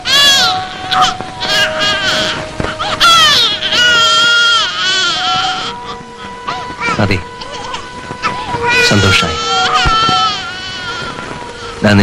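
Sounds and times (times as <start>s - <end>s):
person wailing: 0.0s - 12.0s
person speaking: 6.3s - 10.7s.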